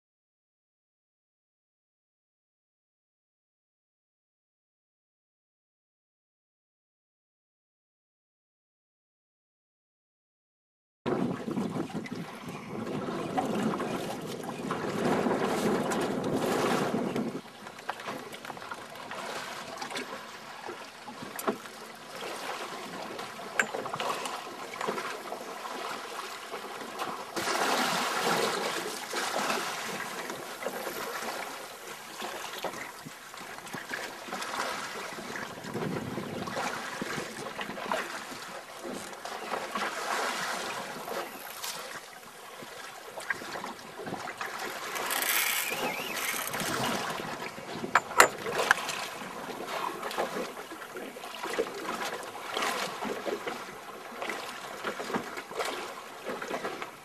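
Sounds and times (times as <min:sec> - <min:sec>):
wind on microphone: 0:11.1 - 0:17.6, 0:35.1 - 0:37.8, 0:45.0 - 0:49.0
water lapping against boat hull: 0:11.1 - 0:57.0
sharp knocks: 0:48.0 - 0:48.8.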